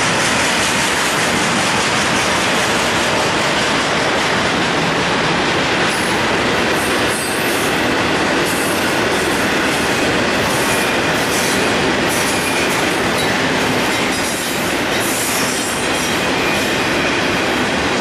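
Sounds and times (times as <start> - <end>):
train wheels on rail: 0.0 - 18.0.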